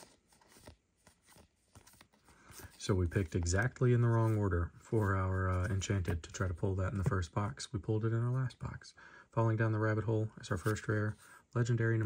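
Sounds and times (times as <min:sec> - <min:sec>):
trading cards sliding and flicking: 0:00.0 - 0:06.1.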